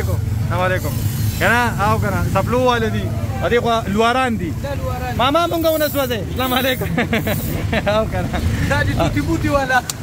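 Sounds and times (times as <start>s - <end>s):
auto-rickshaw engine running: 0.0s - 10.0s.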